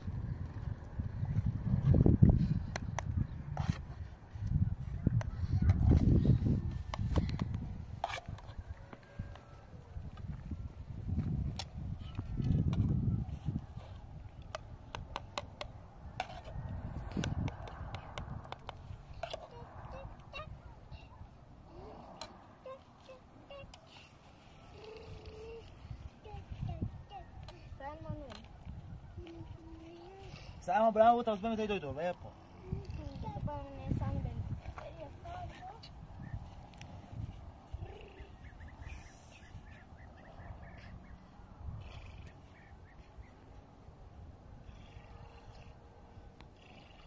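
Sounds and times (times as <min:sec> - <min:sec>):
wind on microphone: 0:00.0 - 0:30.7, 0:32.1 - 0:47.0.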